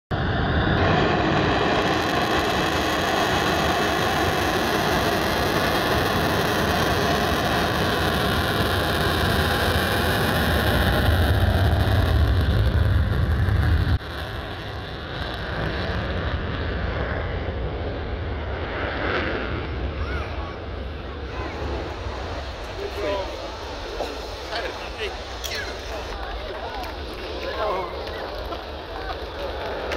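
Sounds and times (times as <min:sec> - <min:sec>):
jet engine with afterburner: 0:00.1 - 0:29.9
onlookers' voices: 0:01.4 - 0:16.2, 0:17.8 - 0:29.9.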